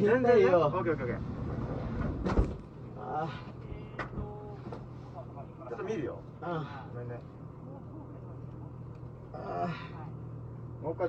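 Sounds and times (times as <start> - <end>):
muffled voices: 0.0 - 11.0
steady low hum: 0.0 - 11.0
dull low thump: 1.3 - 2.7.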